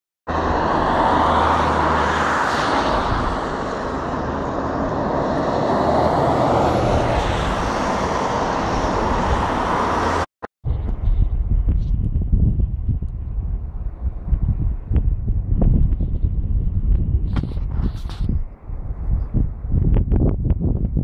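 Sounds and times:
broad rushing noise: 0:00.3 - 0:11.8.

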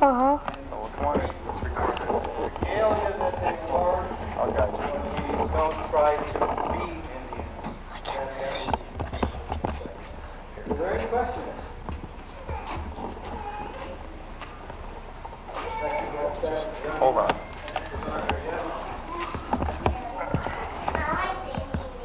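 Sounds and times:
indistinct chatter: 0:00.0 - 0:22.0.

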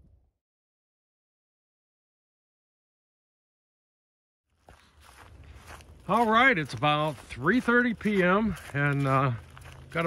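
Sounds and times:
footsteps on dirt trail: 0:04.5 - 0:10.0.

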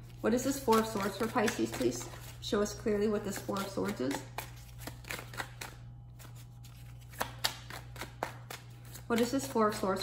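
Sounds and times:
cards being shuffled by hand: 0:00.0 - 0:10.0.

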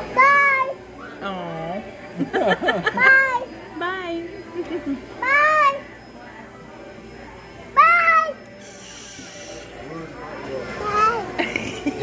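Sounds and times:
toddler squealing: 0:08.6 - 0:09.8.

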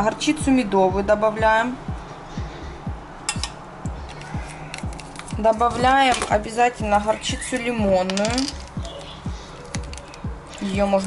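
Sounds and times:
background music with low beat: 0:00.0 - 0:11.0
plastic pouch crinkling: 0:08.1 - 0:10.7.

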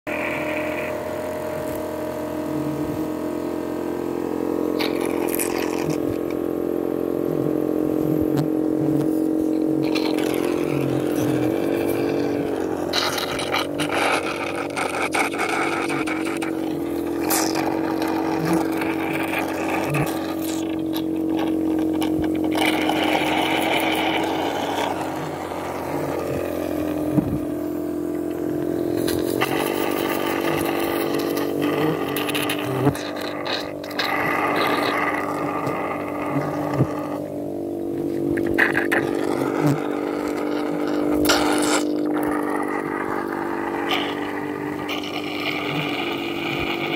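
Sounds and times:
small motor humming: 0:00.1 - 0:46.9.

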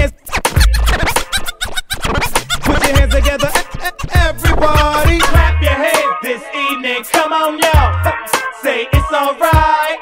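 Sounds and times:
turntable scratching: 0:00.0 - 0:06.1
hip hop dance music: 0:00.0 - 0:10.0.

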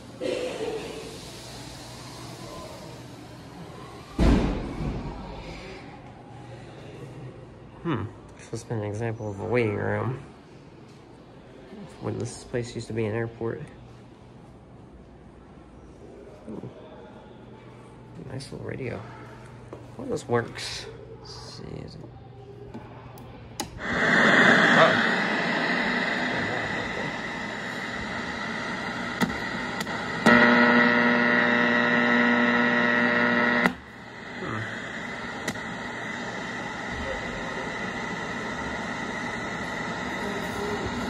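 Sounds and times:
radio static hiss: 0:23.7 - 0:41.0
steady buzzing tone: 0:23.8 - 0:41.0.

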